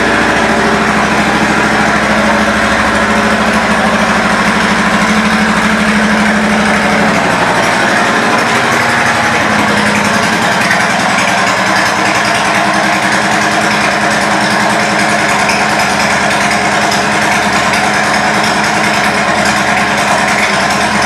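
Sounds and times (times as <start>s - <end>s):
motorcycle engine idling: 0.0s - 21.0s.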